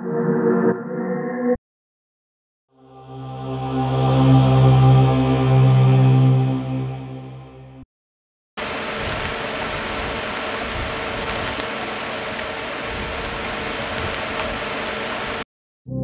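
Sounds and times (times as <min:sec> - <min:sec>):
vinyl crackling hiss: 0:08.6 - 0:15.4.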